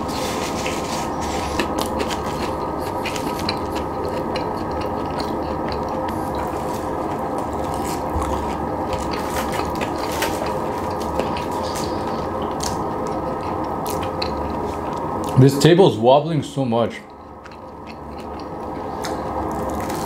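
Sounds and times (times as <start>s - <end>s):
person chewing food: 0.0s - 15.4s, 17.1s - 20.0s.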